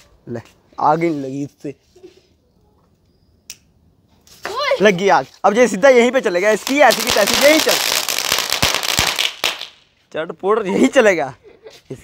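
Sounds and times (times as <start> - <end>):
firecracker crackling hiss: 6.2 - 10.0
sharp firecracker pops: 6.6 - 9.8.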